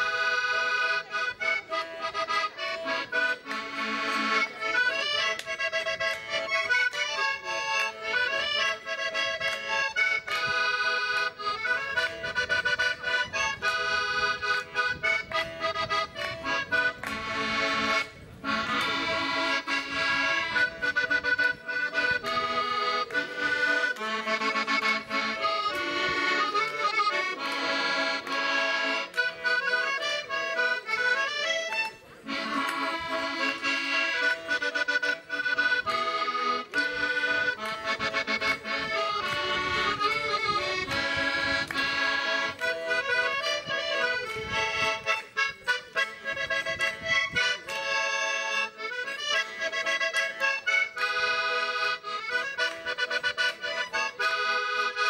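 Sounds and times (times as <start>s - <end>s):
button accordion tune: 0.0s - 55.0s.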